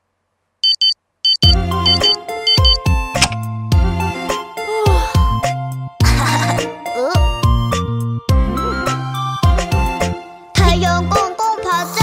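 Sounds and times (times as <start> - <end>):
alarm clock beeping: 0.6 - 2.8
cartoon song backing music: 1.4 - 12.0.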